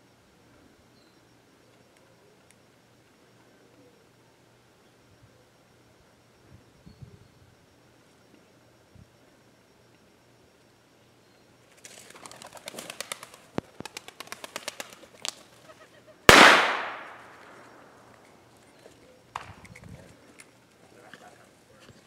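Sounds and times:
bird wingbeats flurry: 11.7s - 15.8s
loud gunshot: 16.3s - 17.6s.

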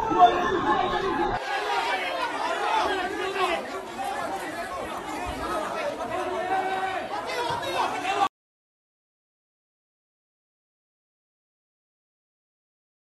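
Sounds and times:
people talking at once: 0.0s - 8.3s.

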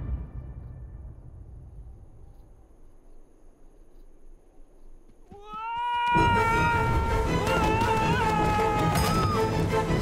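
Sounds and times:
faint low rumble: 0.0s - 5.1s.

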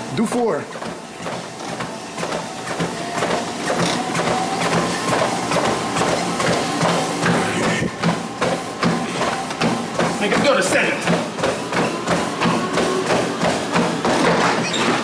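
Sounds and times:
treadmill motor whine: 0.0s - 15.0s
footfalls on treadmill belt: 0.2s - 15.0s.

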